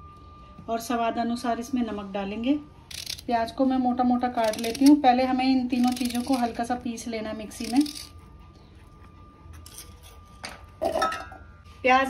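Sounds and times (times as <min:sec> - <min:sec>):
steady electrical whine: 0:00.0 - 0:10.9.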